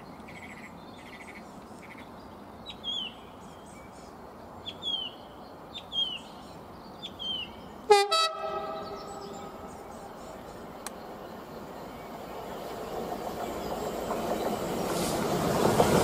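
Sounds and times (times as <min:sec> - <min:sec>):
approaching train noise: 0:00.0 - 0:16.0
locomotive horn blast: 0:07.9 - 0:09.7.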